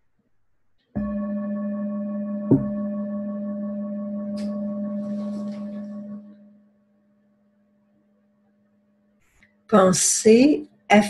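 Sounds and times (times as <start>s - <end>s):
metal singing bowl ringing: 1.0s - 6.8s
sharp knock: 2.5s - 2.8s.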